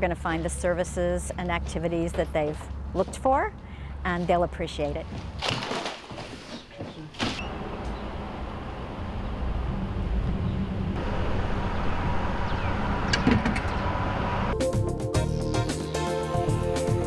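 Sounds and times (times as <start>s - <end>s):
outdoor traffic noise: 0.0s - 14.6s.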